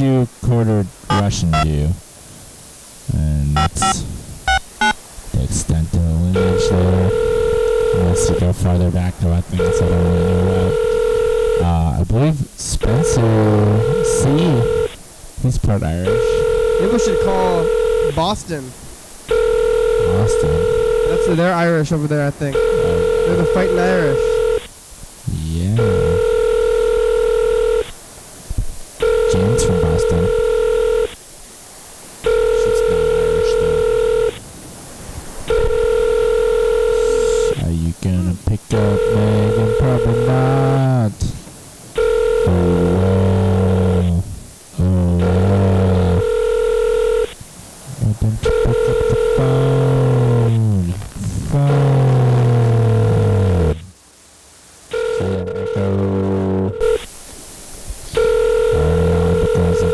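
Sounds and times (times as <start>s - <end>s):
telephone ringing tone: 1.1s - 1.8s, 3.6s - 5.0s, 6.3s - 8.8s, 9.6s - 12.0s, 12.9s - 15.0s, 16.0s - 18.6s, 19.3s - 21.8s, 22.4s - 24.7s, 25.7s - 28.0s, 29.0s - 31.2s, 32.2s - 34.4s, 35.5s - 37.6s, 38.7s - 41.0s, 42.0s - 44.1s, 45.2s - 47.4s, 48.4s - 50.6s, 54.9s - 57.1s, 58.1s - 59.9s.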